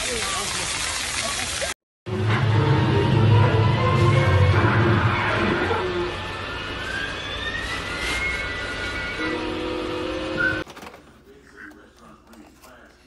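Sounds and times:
rising whistle-like glide: 6.0 - 10.6.

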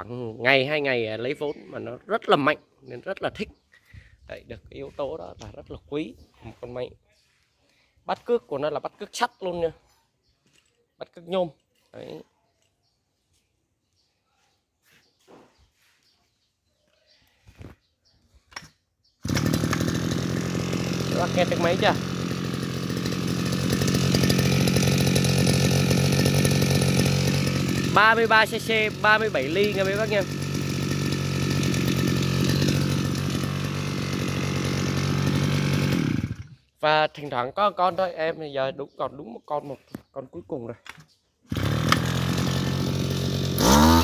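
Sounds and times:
brush cutter engine running: 19.2 - 36.6, 41.5 - 44.0.

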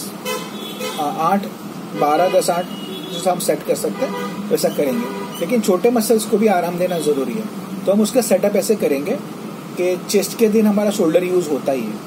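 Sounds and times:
man speaking: 0.9 - 12.0.

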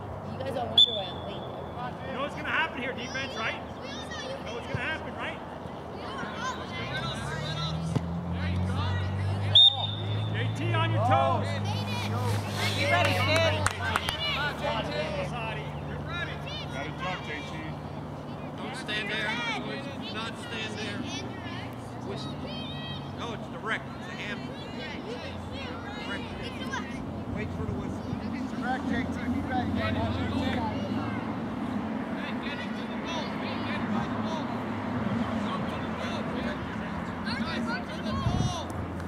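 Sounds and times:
people shouting and calling: 18.6 - 27.1.

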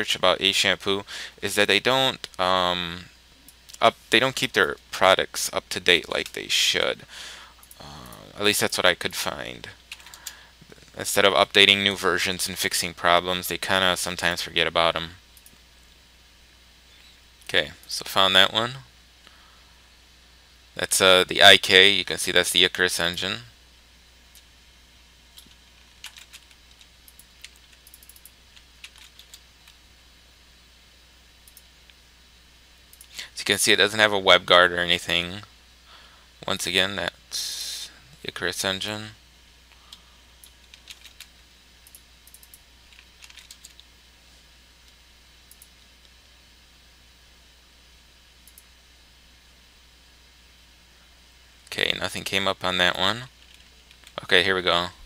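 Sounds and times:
faint room hum and hiss: 0.0 - 55.0
computer keyboard and mouse clicks: 25.4 - 29.8, 40.4 - 41.3, 41.9 - 43.9.

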